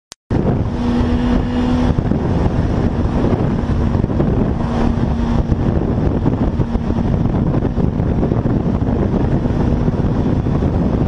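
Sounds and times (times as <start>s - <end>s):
steady engine hum: 0.3s - 11.0s
wind buffeting microphone: 0.3s - 11.0s.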